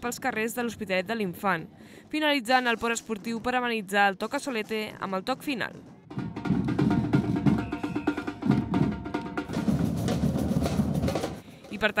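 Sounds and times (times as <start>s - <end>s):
street percussion group drumming: 6.0s - 12.0s.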